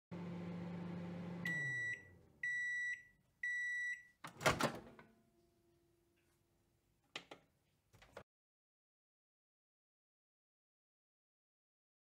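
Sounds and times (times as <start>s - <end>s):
microwave oven humming: 0.1s - 3.6s.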